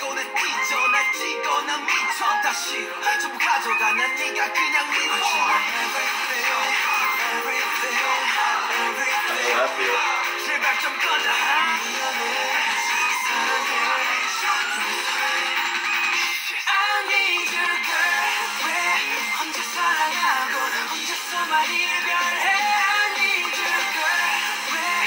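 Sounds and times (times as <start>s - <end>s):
pop song with male vocals: 0.0s - 25.0s.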